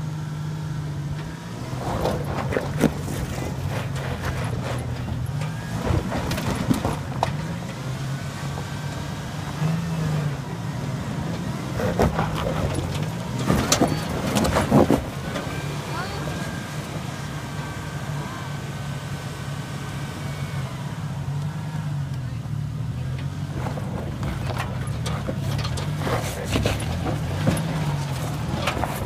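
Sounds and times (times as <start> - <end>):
truck engine running at low revs: 0.0 - 29.0
tyres crunching on rock: 1.7 - 10.2, 11.4 - 16.6, 23.2 - 29.0.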